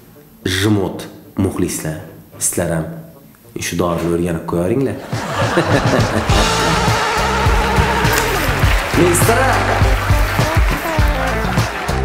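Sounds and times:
man chuckling: 5.1s - 8.5s
music with a beat: 5.2s - 12.0s.

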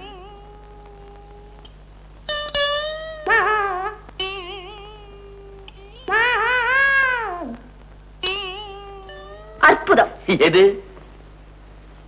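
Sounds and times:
high voice singing with vibrato: 3.0s - 9.9s.

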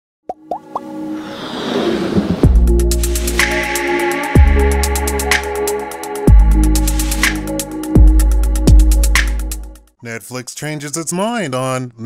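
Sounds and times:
electronic music build-up: 0.4s - 9.8s
quick rising pops: 0.5s - 3.5s.

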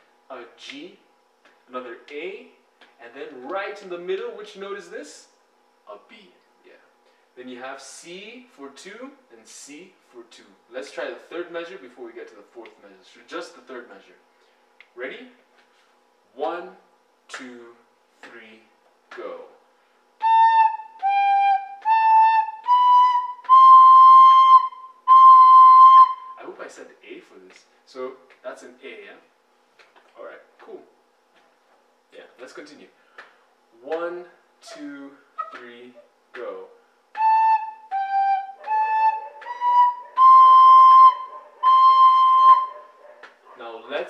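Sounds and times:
recorder playing slow notes: 20.2s - 26.4s, 37.1s - 42.9s.

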